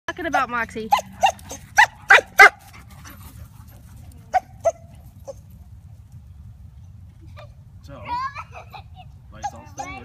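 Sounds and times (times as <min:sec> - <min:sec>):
dog play barks: 0:00.2 - 0:03.4.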